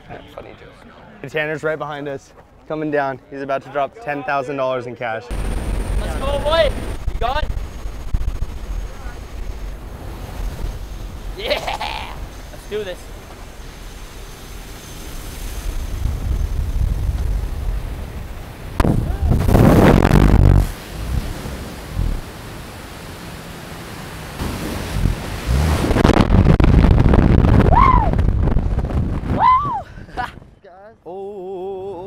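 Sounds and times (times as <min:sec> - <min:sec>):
wind buffeting microphone: 0:05.3 - 0:22.7, 0:24.4 - 0:30.6
person shouting: 0:27.7 - 0:28.2.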